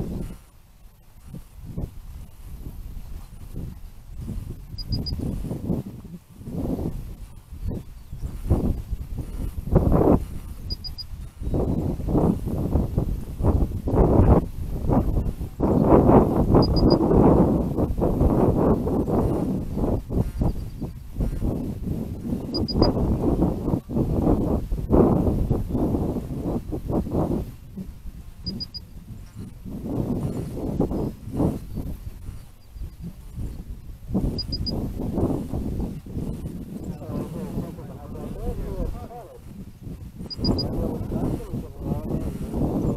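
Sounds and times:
wind buffeting microphone: 0:00.0 - 0:42.9
faint double beep: 0:04.8 - 0:05.2, 0:10.7 - 0:11.1, 0:16.6 - 0:17.0, 0:22.5 - 0:23.0, 0:28.5 - 0:28.8, 0:34.4 - 0:34.8, 0:40.3 - 0:40.8.

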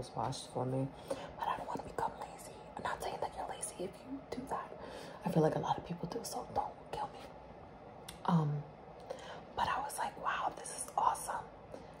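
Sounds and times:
woman whispering: 0:01.3 - 0:04.8, 0:05.6 - 0:07.3, 0:09.6 - 0:11.6.

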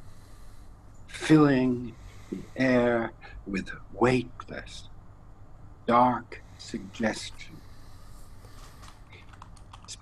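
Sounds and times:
low hum: 0:00.0 - 0:09.9
keyboard typing: 0:08.8 - 0:10.0.

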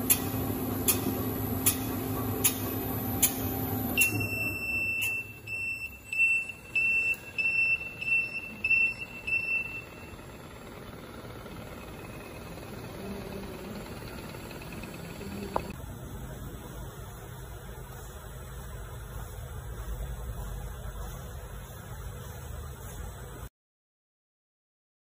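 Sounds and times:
machine low hum: 0:00.0 - 0:23.5
electronic beeper beeping: 0:03.0 - 0:10.6.

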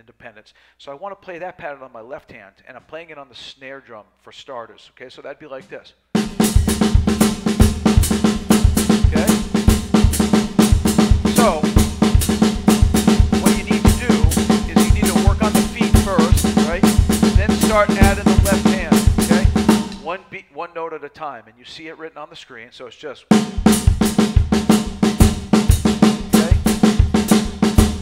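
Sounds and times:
bass drum pattern: 0:06.2 - 0:20.1, 0:23.3 - 0:28.0
latin drum kit groove: 0:06.2 - 0:20.1, 0:23.3 - 0:28.0
stick pattern on snare drum: 0:06.2 - 0:20.1, 0:23.3 - 0:28.0.

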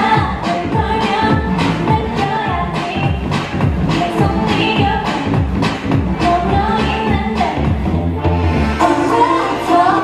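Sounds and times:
dance track with female singing: 0:00.0 - 0:10.0.

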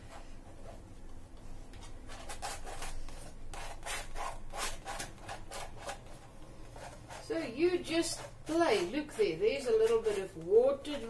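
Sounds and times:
paintbrush scrubbing on canvas: 0:02.1 - 0:11.0.

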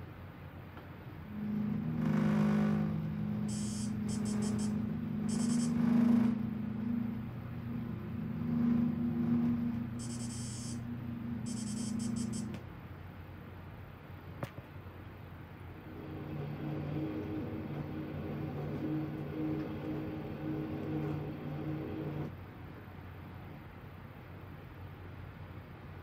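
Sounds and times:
low steady drone: 0:01.1 - 0:12.9, 0:15.6 - 0:23.4
high electronic warbling pulses: 0:01.3 - 0:12.5.

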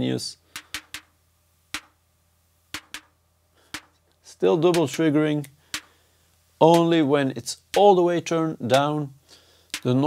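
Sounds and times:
electronic snare hits: 0:00.6 - 0:02.0, 0:02.7 - 0:04.0.

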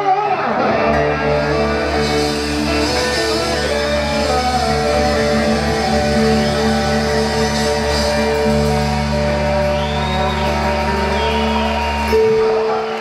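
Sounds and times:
electric lead guitar gliding notes: 0:00.0 - 0:13.0
rock band playing: 0:00.0 - 0:13.0.

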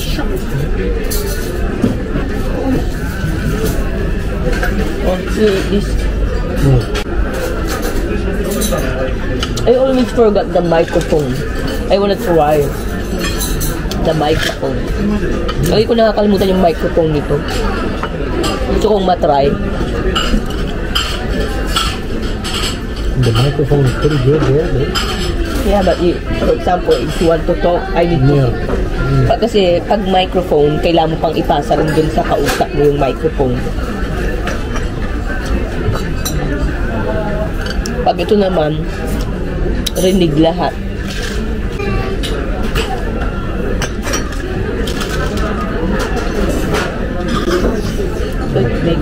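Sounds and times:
low murmur of room noise: 0:00.0 - 0:49.0
tableware clinking on plates: 0:42.2 - 0:48.4.

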